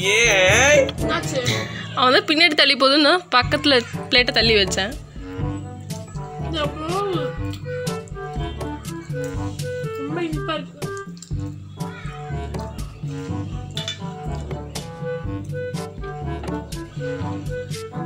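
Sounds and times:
music with beat and bass: 0.0s - 2.2s
person's voice: 0.0s - 2.6s.

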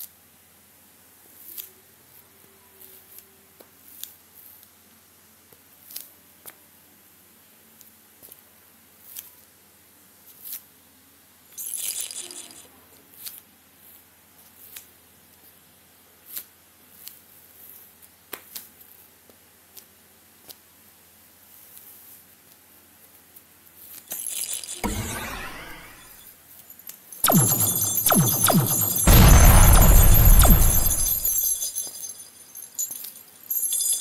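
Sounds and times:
crash-like burst: 24.8s - 26.2s, 27.3s - 31.7s
jingling rattle: 31.0s - 34.0s.

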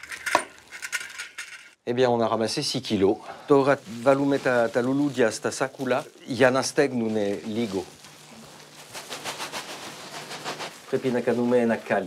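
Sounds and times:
person speaking: 2.0s - 8.8s, 10.4s - 12.0s
plastic sack rustling: 3.0s - 12.0s.

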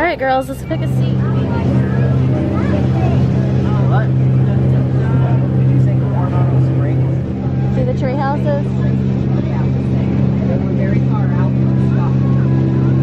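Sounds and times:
boat engine humming: 0.0s - 13.0s.

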